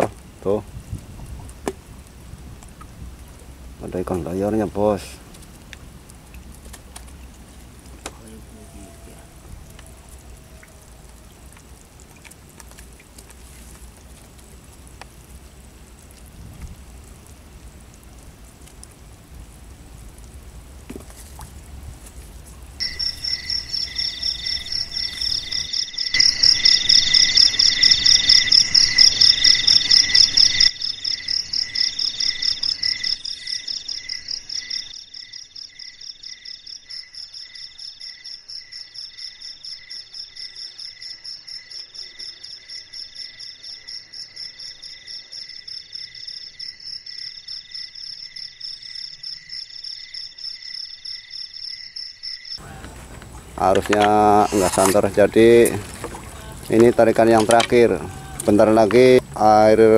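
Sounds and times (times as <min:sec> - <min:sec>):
rough rustling noise: 0:00.0 - 0:26.5, 0:52.6 - 0:59.4
insects chirping: 0:01.4 - 0:59.9
high insect trill: 0:08.2 - 0:11.3, 0:22.8 - 0:59.9.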